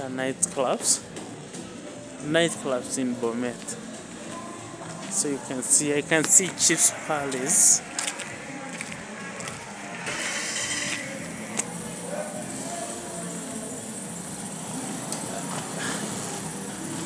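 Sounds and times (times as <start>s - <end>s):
crowd noise: 0.0s - 17.0s
faint distant voices: 0.0s - 17.0s
traffic: 0.0s - 17.0s.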